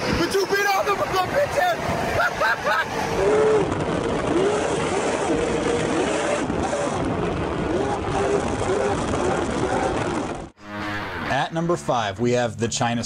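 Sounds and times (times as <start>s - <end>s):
wind and road noise: 0.0s - 11.3s.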